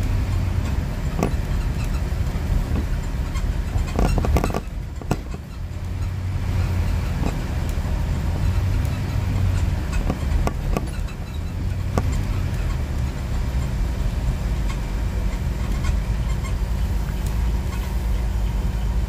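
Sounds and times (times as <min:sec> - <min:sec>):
rattling clicks and knocks: 0:00.0 - 0:17.9
vehicle engine and road rumble: 0:00.0 - 0:19.0.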